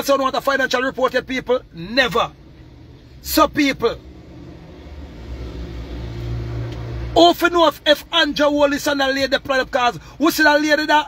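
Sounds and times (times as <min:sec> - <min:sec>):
car rumble inside cabin: 0:00.0 - 0:11.0.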